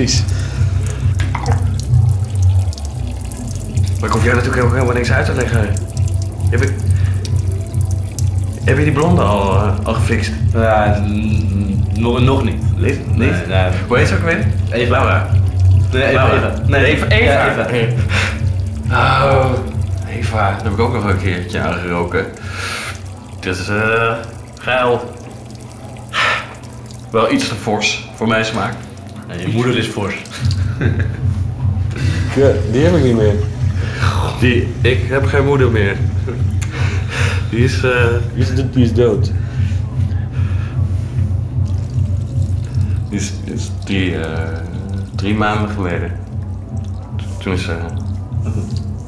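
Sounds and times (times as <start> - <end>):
steady low hum: 0.0 - 29.5, 30.2 - 49.0
water running and splashing: 0.0 - 49.0.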